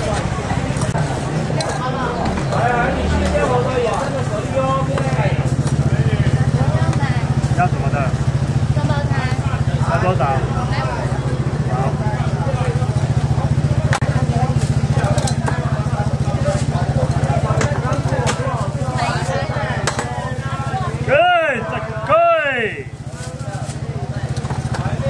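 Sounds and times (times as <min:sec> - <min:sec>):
people talking: 0:00.0 - 0:25.0
small engine droning: 0:00.0 - 0:25.0.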